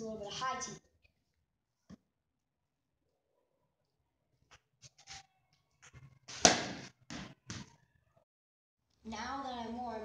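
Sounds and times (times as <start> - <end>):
bat hitting ball: 6.3 - 7.7.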